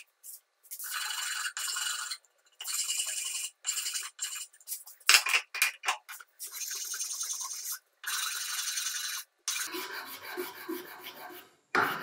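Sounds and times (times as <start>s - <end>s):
file rasping on metal: 6.4s - 12.0s.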